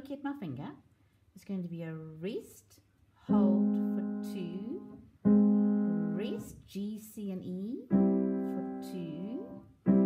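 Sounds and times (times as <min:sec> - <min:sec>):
woman speaking: 0:00.0 - 0:00.8, 0:01.4 - 0:05.0, 0:05.9 - 0:09.6.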